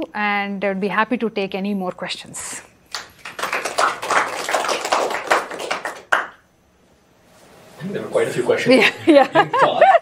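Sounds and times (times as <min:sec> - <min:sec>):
small group clapping: 0:02.9 - 0:06.4.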